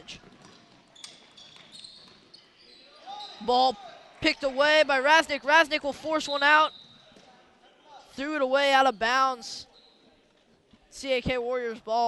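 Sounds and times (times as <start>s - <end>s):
sneakers squeaking on hardwood: 0.0s - 3.5s, 6.1s - 7.4s
basketball bounce: 0.1s - 2.2s.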